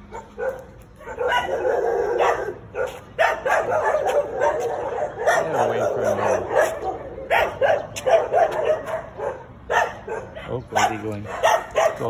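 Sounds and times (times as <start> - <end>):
dogs barking: 0.0 - 12.0.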